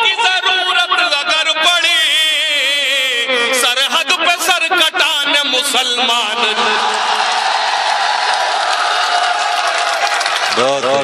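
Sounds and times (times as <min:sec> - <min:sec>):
crowd cheering and applauding: 0:06.4 - 0:11.0.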